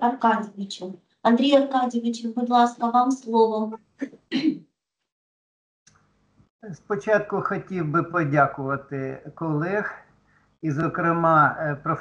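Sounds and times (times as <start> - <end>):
person clearing throat: 4.0 - 4.6.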